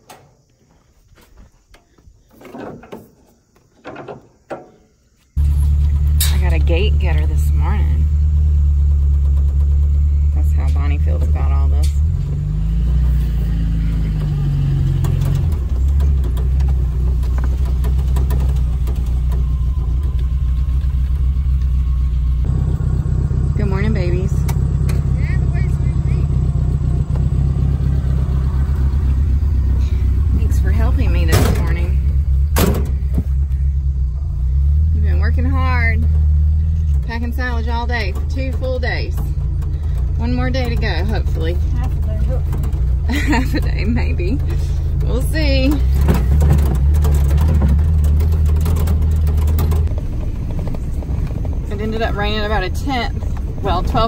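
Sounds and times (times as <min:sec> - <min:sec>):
car engine hum inside cab: 0:05.3 - 0:54.0.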